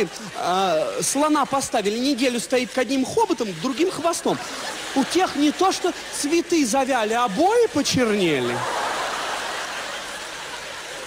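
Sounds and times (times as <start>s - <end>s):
large crowd laughing: 0.0s - 11.0s.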